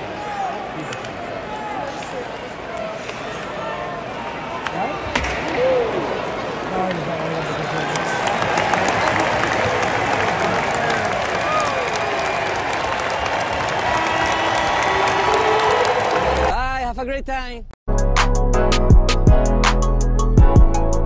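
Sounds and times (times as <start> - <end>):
applause and cheering: 7.3 - 16.5.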